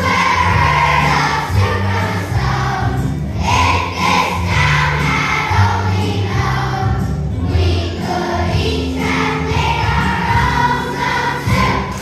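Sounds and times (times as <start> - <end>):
children singing as a choir: 0.0 - 12.0
low instrumental accompaniment: 0.0 - 12.0.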